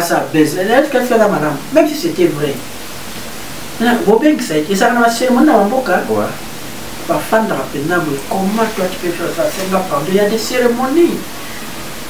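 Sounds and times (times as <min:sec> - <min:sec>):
man talking: 0:00.0 - 0:02.7, 0:03.8 - 0:11.3
background hiss: 0:00.0 - 0:12.0.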